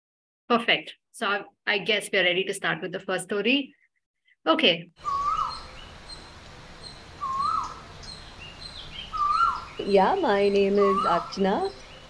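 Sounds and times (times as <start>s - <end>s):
bird whistled call: 5.0s - 9.9s, 10.7s - 12.0s
background hiss: 5.0s - 12.0s.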